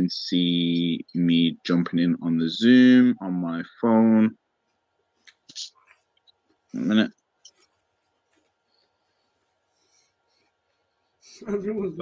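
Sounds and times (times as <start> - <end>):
person speaking: 0.0 - 4.4, 6.7 - 7.6, 11.3 - 12.0.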